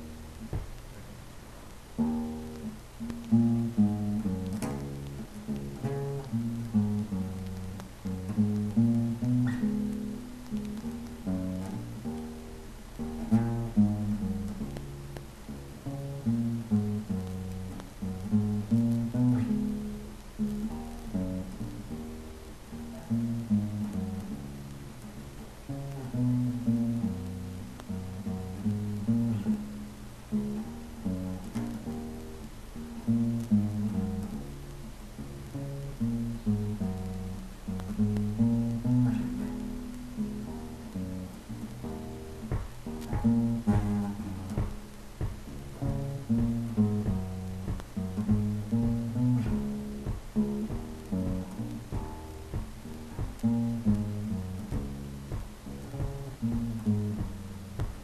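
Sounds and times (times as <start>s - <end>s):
plucked acoustic bass riff: 0.0s - 0.9s, 2.0s - 58.0s.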